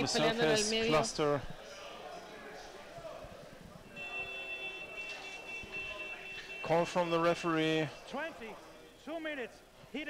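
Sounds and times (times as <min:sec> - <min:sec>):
underwater signal horn tone: 0:03.9 - 0:07.2.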